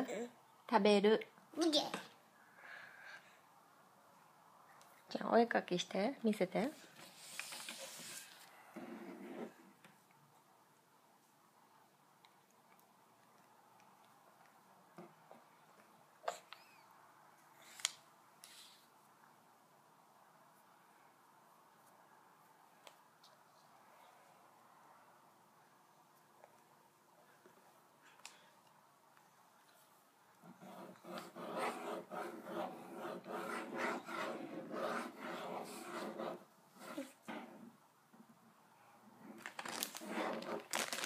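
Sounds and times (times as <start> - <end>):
marker scribbling on paper: 30.4 - 37.5.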